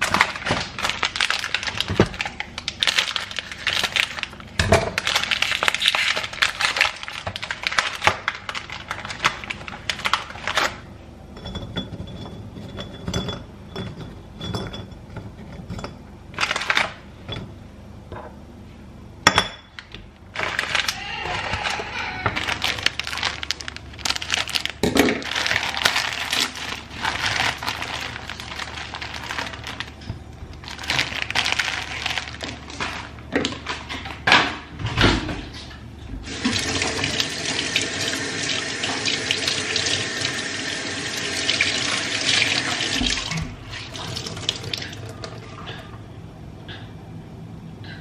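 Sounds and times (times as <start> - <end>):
clatter of things handled: 20.4 - 35.8.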